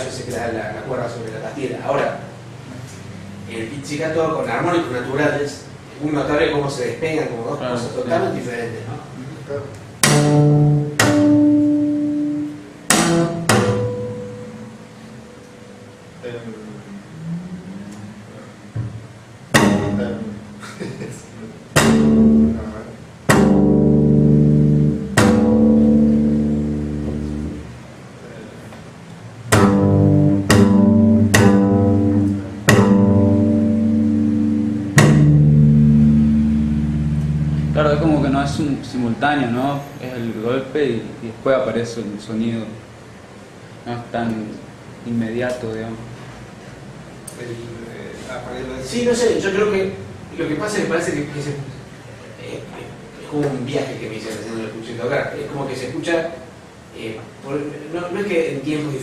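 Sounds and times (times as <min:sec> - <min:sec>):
double bass pizzicato harmonics: 0:10.0 - 0:20.8, 0:21.6 - 0:27.8, 0:29.4 - 0:39.2.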